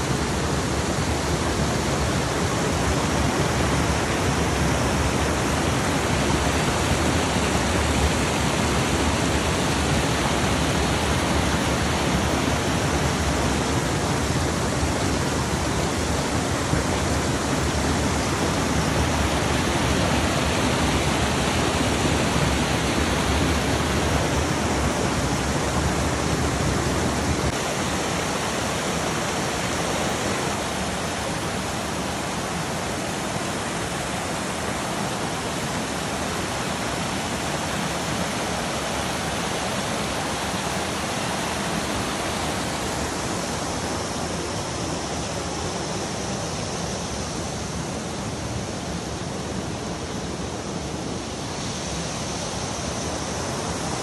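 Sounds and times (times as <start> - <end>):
waterfall rushing over rocks: 0.0 - 54.0.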